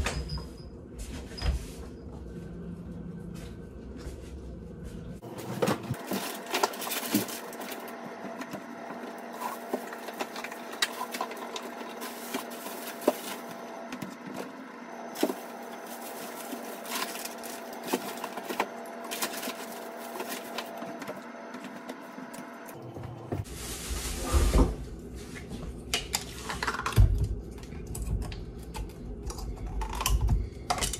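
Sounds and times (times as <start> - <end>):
freezer hum: 0.0 - 30.9
packages knocking and rustling: 5.2 - 21.8.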